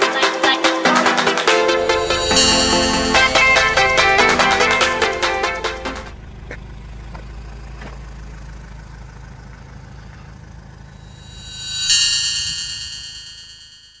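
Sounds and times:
bright chime: 1.6 - 6.1, 11.1 - 14.0
van engine idling: 4.8 - 11.0.

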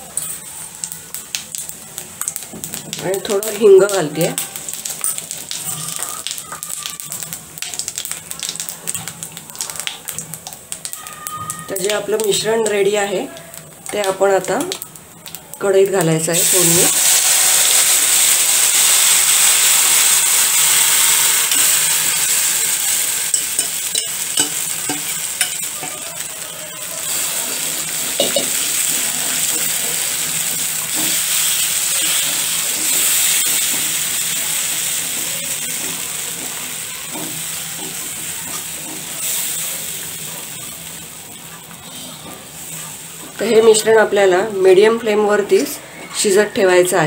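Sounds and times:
batter sizzling in hot oil: 0.0 - 46.9
wire whisk stirring in pan: 16.4 - 40.8.

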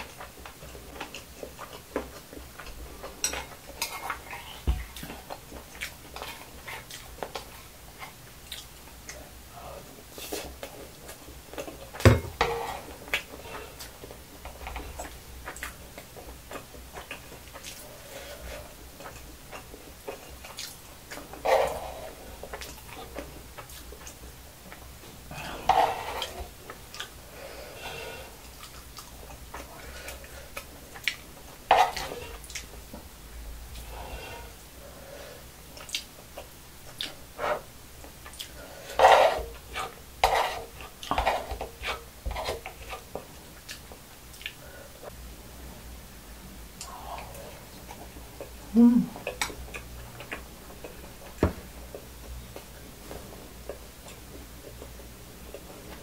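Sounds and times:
metal spoon scraping a pan: 12.4 - 13.0, 25.6 - 26.4, 38.9 - 43.1.

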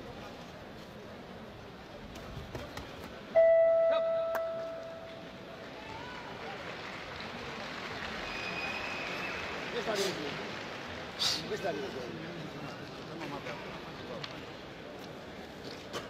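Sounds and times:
crowd murmur: 0.0 - 16.0.

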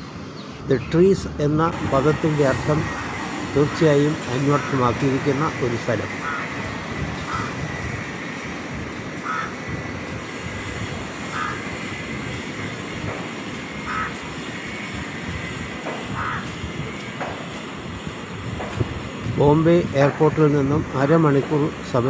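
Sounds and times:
distant traffic rumble: 0.0 - 22.0.

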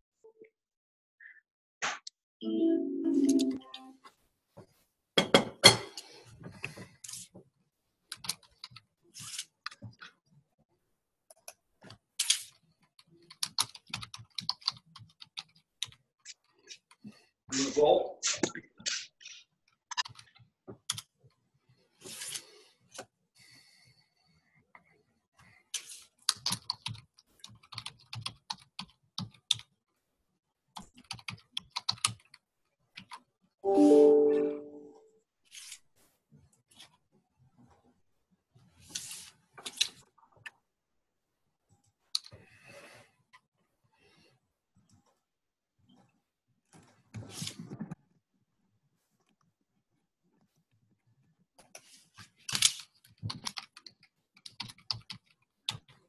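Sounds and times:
typing on computer keyboard: 12.9 - 16.0, 26.3 - 29.7, 30.8 - 32.4, 52.5 - 56.0.

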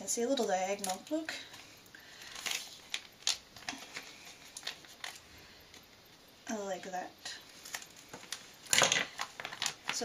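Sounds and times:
plastic crinkling: 0.2 - 6.0, 7.4 - 10.0.

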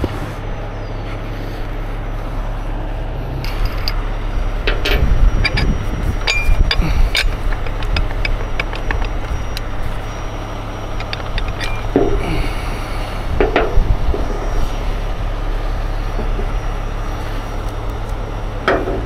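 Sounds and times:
diesel engine running: 0.0 - 19.0
metal clicks and clinks: 3.4 - 10.2, 10.8 - 12.2.

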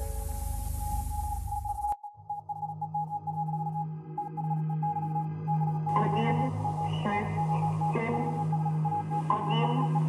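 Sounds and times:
electronic music with deep bass: 0.0 - 10.0
low synth drone: 0.0 - 10.0
pulsing high synth tone: 0.0 - 10.0.

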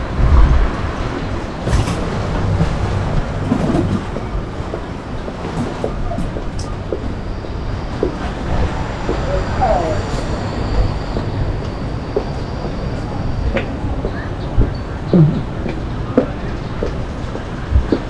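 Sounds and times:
traffic rumble: 0.0 - 18.0
faint voices: 3.2 - 18.0.

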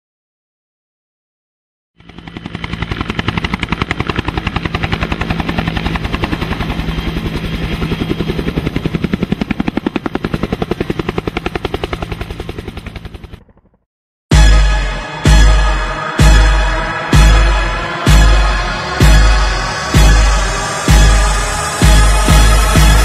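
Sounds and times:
helicopter rotor chopping: 2.0 - 13.9, 16.0 - 23.0.

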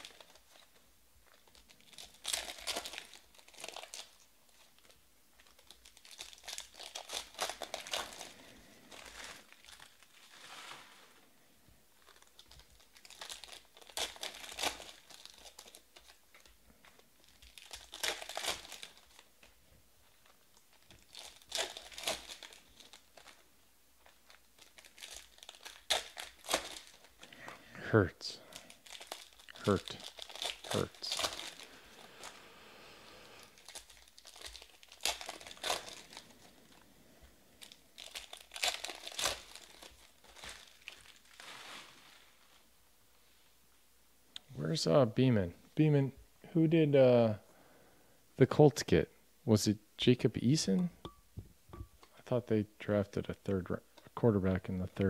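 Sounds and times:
foil wrappers crinkling and tearing: 0.0 - 11.4, 12.0 - 27.6, 28.4 - 32.4, 33.4 - 36.9, 37.6 - 42.7
cards rustling: 28.5 - 32.4, 33.4 - 36.8, 37.6 - 42.5.

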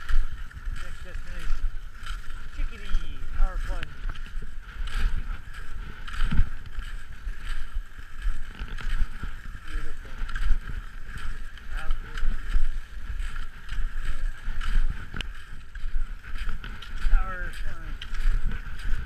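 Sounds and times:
skis scraping on snow: 0.0 - 19.0
wind rumbling on microphone: 0.0 - 19.0.

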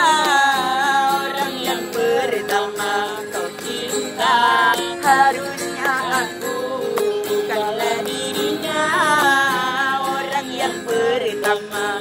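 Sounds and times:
nylon-string guitar strumming: 0.0 - 12.0.

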